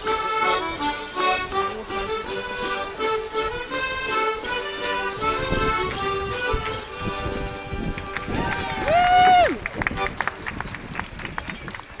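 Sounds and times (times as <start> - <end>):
folk dance tune: 0.0 - 10.7
street crowd noise: 0.0 - 12.0
person shouting a whoop: 8.4 - 9.6.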